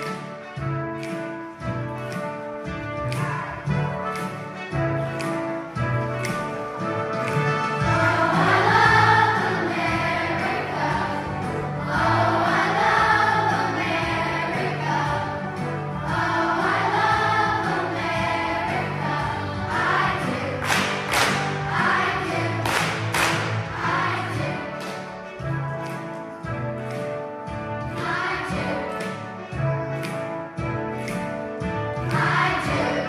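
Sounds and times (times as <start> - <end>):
instrumental accompaniment: 0.0 - 33.0
choir singing: 7.8 - 25.0, 27.8 - 29.1, 32.0 - 33.0.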